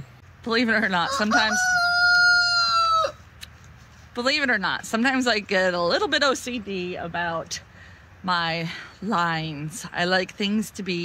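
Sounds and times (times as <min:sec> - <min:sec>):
rooster crowing: 0:01.0 - 0:03.2.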